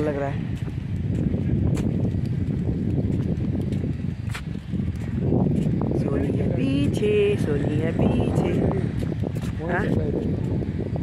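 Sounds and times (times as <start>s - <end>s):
wind buffeting a microphone: 0.0s - 11.0s.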